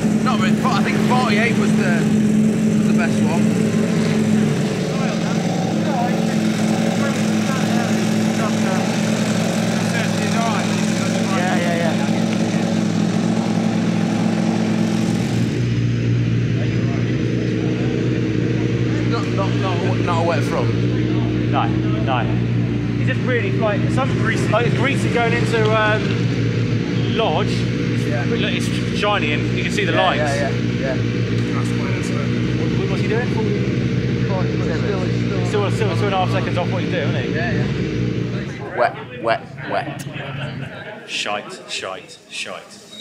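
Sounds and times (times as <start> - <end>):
faint voices: 0.0 - 14.2, 16.4 - 43.0
engine running steadily: 0.0 - 40.8.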